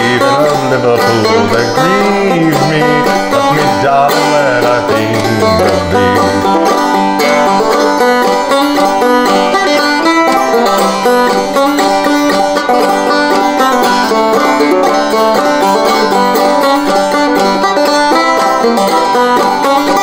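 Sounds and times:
banjo picking and strumming: 0.0 - 20.0.

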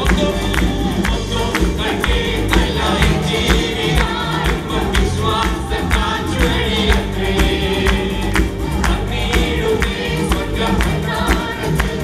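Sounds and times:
acoustic guitar: 0.0 - 12.0
keyboard: 0.0 - 12.0
percussive beat: 0.0 - 12.0
voices singing gospel: 0.0 - 12.0.

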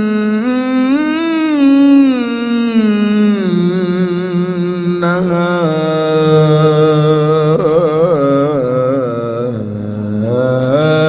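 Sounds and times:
man singing melismatic chant: 0.0 - 11.0.

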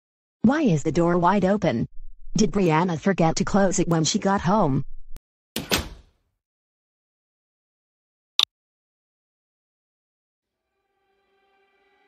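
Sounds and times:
door sound: 5.6 - 6.2.

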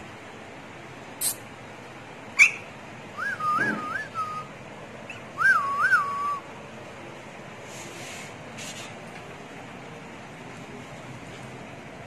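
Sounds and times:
person whistling warbling calls: 3.2 - 4.5.

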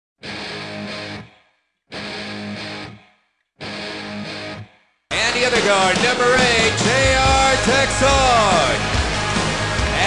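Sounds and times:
distorted electric guitar bursts: 3.7 - 10.0.

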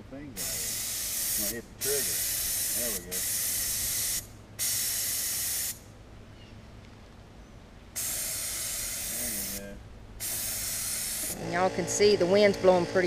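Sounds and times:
paint spray gun hissing: 0.4 - 5.8, 8.0 - 13.0.

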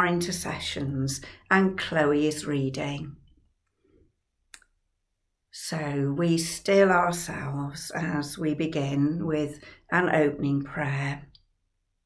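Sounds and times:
woman's voice: 0.0 - 3.2, 5.5 - 11.4.

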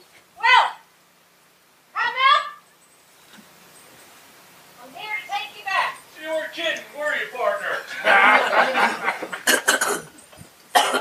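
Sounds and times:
people talking and chuckling: 7.6 - 10.4.

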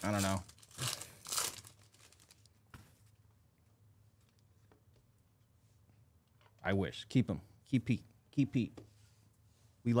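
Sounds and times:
foil wrapper crinkling and tearing: 0.0 - 2.5.

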